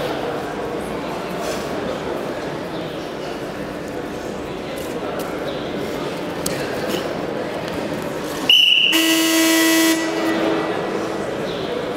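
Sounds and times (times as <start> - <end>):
high whistle: 8.5 - 10.4.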